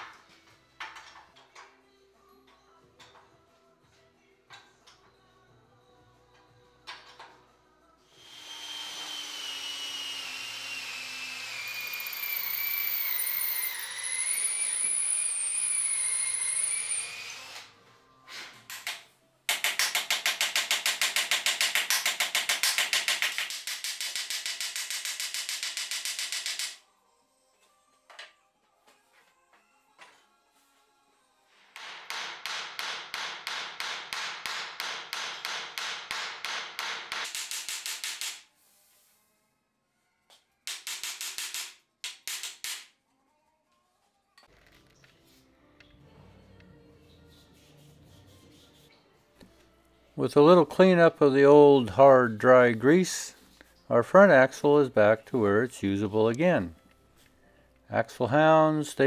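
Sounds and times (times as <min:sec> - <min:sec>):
power tool whining: 0:08.2 - 0:17.7.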